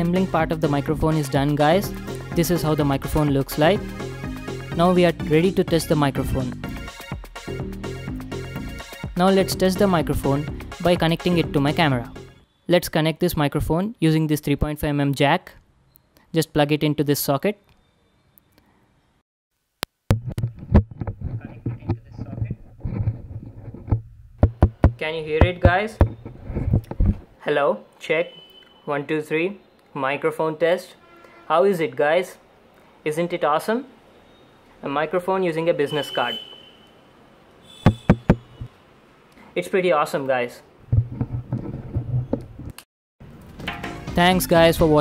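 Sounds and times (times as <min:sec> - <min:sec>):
microphone handling knocks and rustles: 0:20.1 - 0:27.4, 0:37.8 - 0:38.7, 0:40.9 - 0:42.8
sharp taps: 0:23.9 - 0:27.1, 0:37.8 - 0:38.7.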